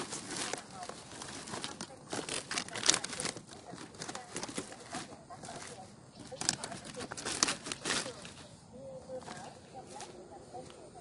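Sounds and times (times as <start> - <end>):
plastic basket brushing: 0.0 - 10.8
dry straw rustling and crackling: 0.0 - 11.0.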